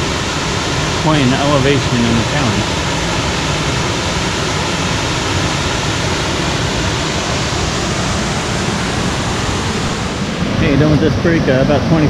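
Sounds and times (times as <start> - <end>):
rapids: 0.0 - 10.6
waterfall roaring over rocks: 0.0 - 11.4.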